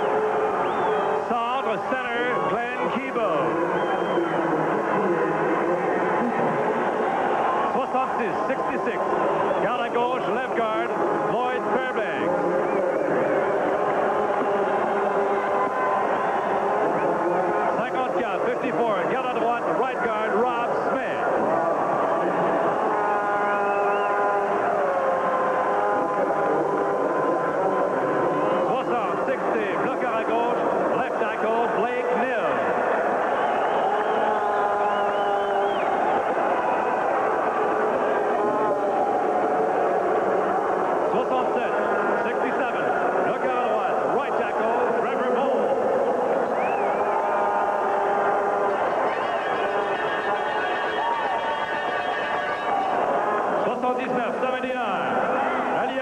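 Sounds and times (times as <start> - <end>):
crowd noise: 0.0 - 56.0
echoing voice over loudspeakers: 1.1 - 6.8, 7.7 - 12.6, 16.7 - 21.6, 28.6 - 32.7, 41.1 - 46.4, 53.5 - 56.0.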